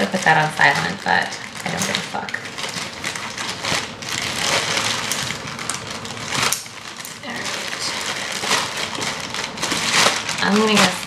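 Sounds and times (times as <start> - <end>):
plastic crinkling and rustling: 0.0 - 11.0
scissors cutting plastic: 0.0 - 11.0.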